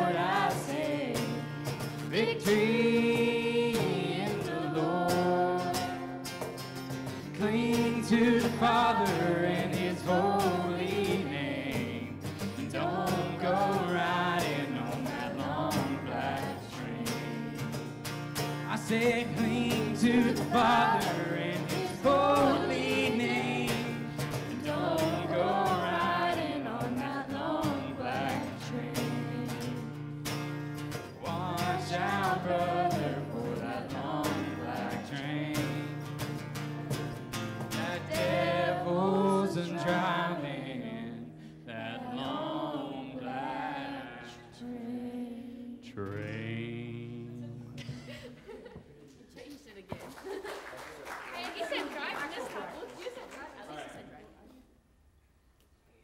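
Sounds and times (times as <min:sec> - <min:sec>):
group of young voices singing: 0:00.0 - 0:06.2, 0:07.3 - 0:17.7, 0:18.8 - 0:29.9, 0:31.2 - 0:35.8, 0:37.8 - 0:47.8
strummed acoustic guitar: 0:00.0 - 0:42.6
cajon hand percussion: 0:01.1 - 0:02.7, 0:05.1 - 0:10.0, 0:35.6 - 0:38.5.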